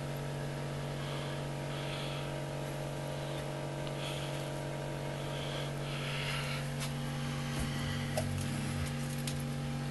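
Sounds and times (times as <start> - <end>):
low electrical hum: 0.0 - 9.9.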